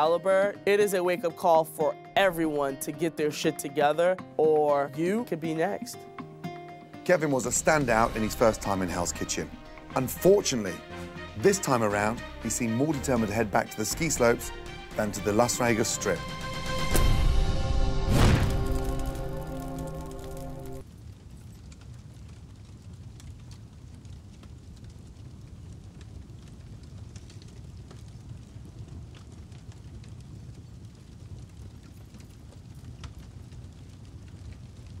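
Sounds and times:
fire with small crackles: 0:00.0 - 0:35.0
held music chord: 0:04.9 - 0:20.8.

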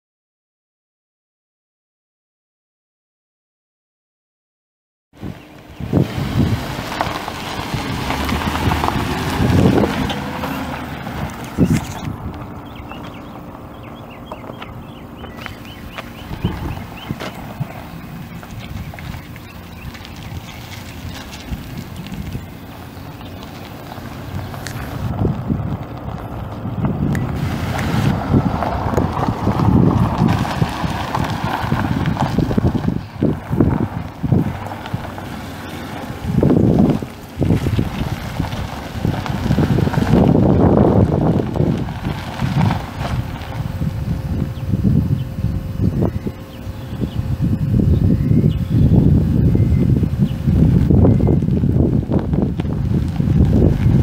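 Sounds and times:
car engine running: 0:05.2 - 0:54.0
wind buffeting microphone: 0:05.2 - 0:54.0.

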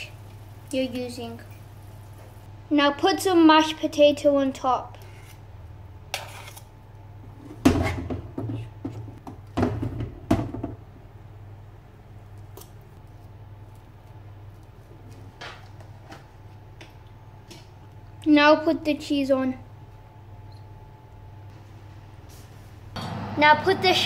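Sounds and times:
low hum: 0:22.9 - 0:24.0.

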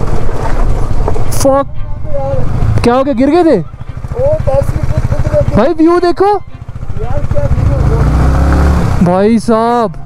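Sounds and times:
motorcycle engine running: 0:00.0 - 0:09.8.

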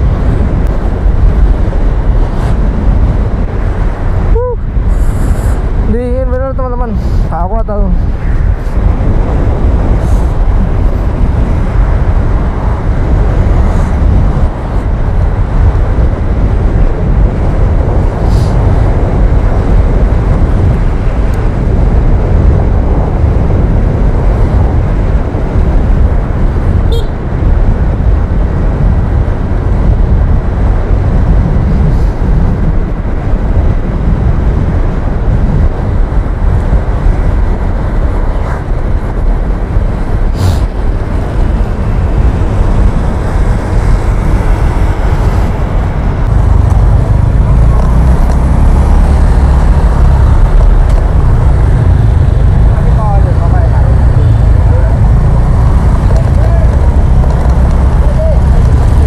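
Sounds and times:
road traffic: 0:00.0 - 0:59.0
wind rush on microphone: 0:00.0 - 0:59.0.

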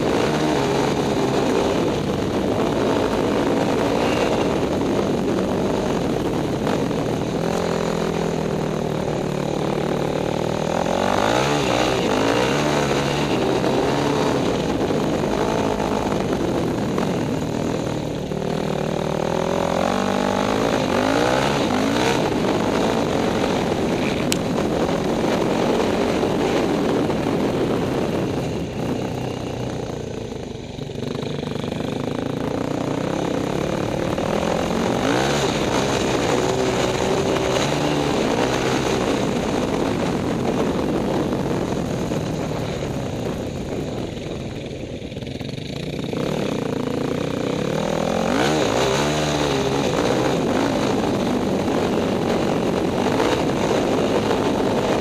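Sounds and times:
dirt bike engine revving: 0:00.0 - 0:29.3, 0:31.1 - 0:40.9, 0:45.2 - 0:55.0.

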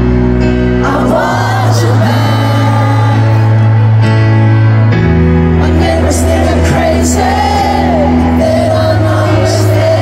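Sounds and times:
man singing: 0:00.8 - 0:03.7, 0:05.6 - 0:10.0.

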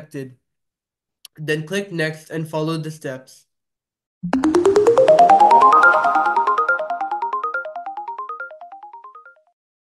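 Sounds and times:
outro music jingle: 0:04.2 - 0:09.5.

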